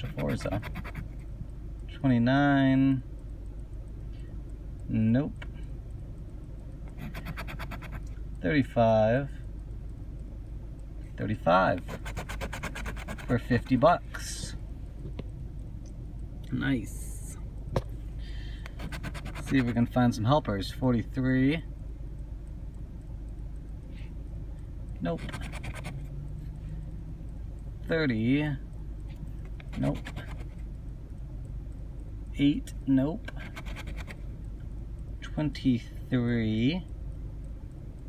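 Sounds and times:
coin scraping lottery ticket: 0.0s - 1.1s, 7.0s - 8.0s, 11.8s - 13.5s, 18.8s - 19.8s, 25.1s - 26.0s, 29.7s - 30.6s, 33.4s - 34.2s.

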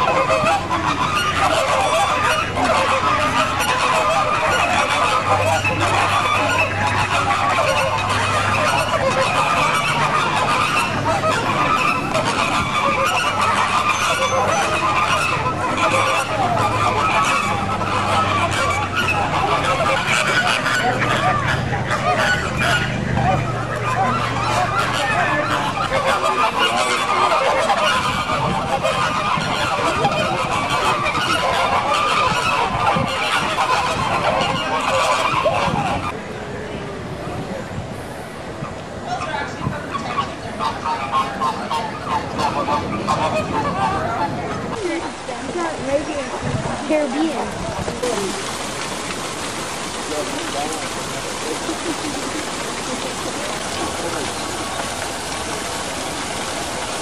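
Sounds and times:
flamingos honking: 0.0s - 36.8s, 38.5s - 57.0s.

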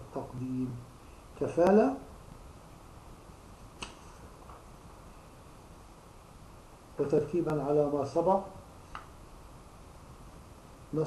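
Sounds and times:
low steady hiss: 0.0s - 11.0s
sharp click: 3.8s - 4.1s.

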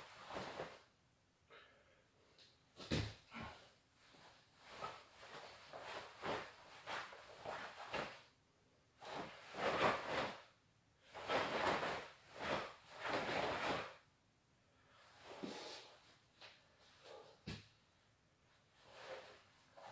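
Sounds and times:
uniform fabric swishing: 0.0s - 0.8s, 2.9s - 8.3s, 9.0s - 10.5s, 11.1s - 14.0s.

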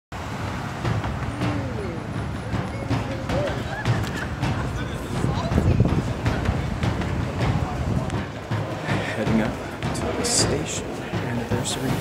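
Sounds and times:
cars driving on city street: 0.1s - 12.0s.

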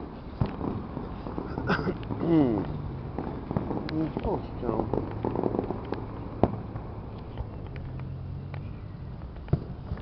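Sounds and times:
sharp pops and crack: 0.4s - 0.8s, 1.5s - 10.0s.

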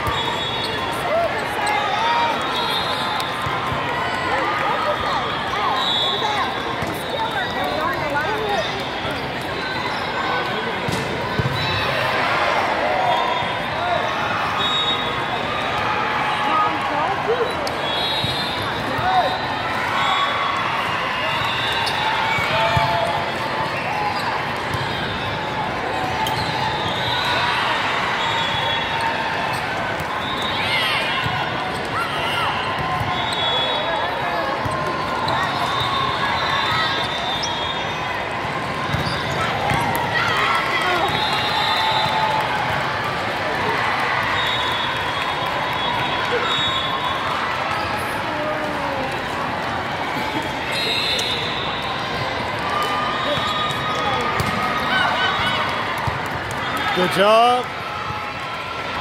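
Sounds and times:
shoes squeaking on court: 38.9s - 39.8s.

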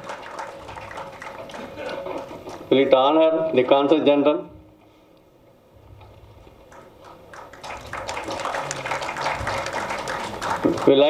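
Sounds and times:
audience clapping: 0.0s - 2.9s, 6.4s - 11.0s.

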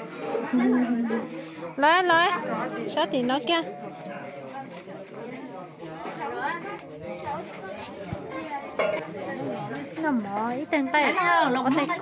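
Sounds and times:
people talking in conversation: 0.0s - 12.0s.

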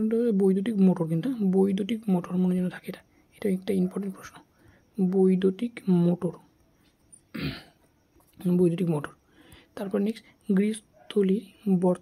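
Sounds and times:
person clearing throat: 7.3s - 7.8s.

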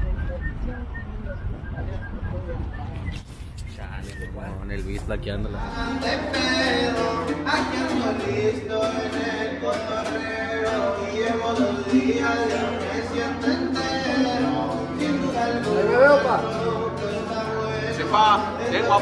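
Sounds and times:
acoustic guitars playing: 3.7s - 19.0s
man singing: 5.2s - 19.0s.

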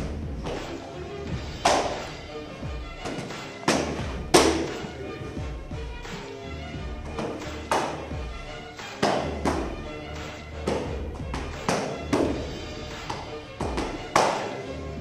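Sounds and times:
background music: 0.0s - 15.0s
punches smacking focus mitts: 3.0s - 4.8s.

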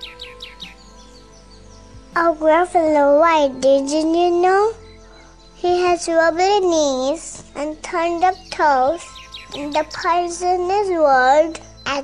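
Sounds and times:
bird chirping: 0.0s - 12.0s
soft background music: 0.0s - 12.0s.

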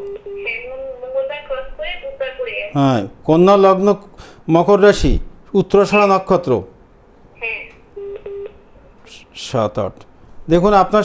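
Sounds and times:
electronic telephone beeps: 8.0s - 8.6s.

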